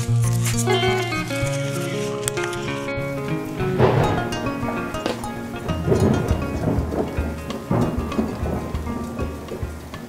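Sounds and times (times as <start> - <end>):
steady rain: 0.0 - 10.0
thunder rolling: 3.3 - 10.0.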